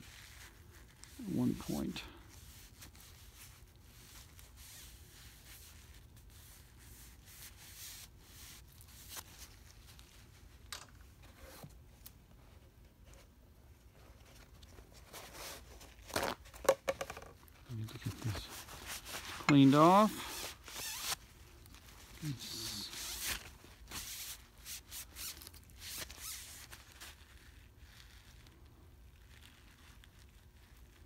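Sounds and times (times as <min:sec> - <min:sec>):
paper towel rubbing and wiping: 0:00.0 - 0:10.5, 0:17.9 - 0:21.2, 0:21.8 - 0:28.6.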